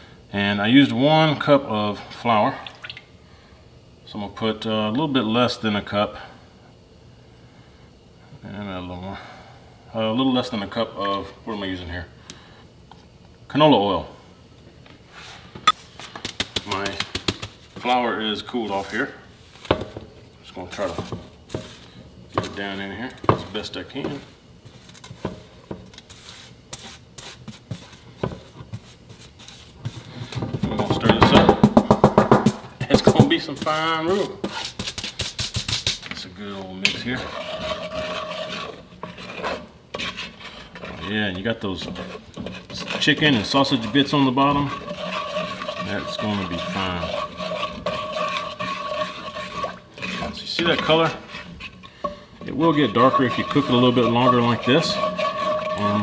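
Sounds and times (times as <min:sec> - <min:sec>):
spatula scraping bottom of pot: 0:36.8 - 0:56.0.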